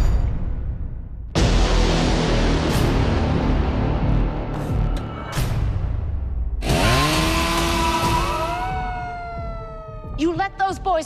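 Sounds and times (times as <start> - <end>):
chainsaw starting and revving: 6.6 - 8.7.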